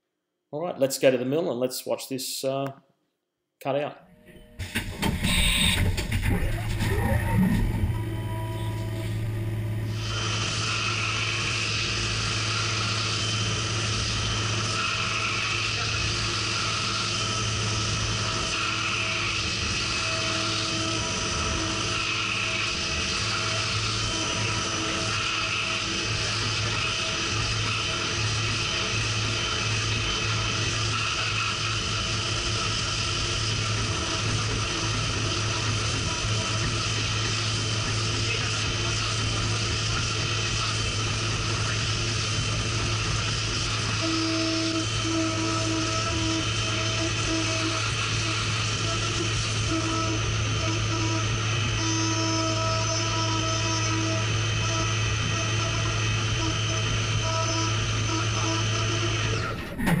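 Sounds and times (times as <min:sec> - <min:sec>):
low machine tone: 0:04.0 - 1:00.0
mill spindle cutting whine: 0:04.2 - 1:00.0.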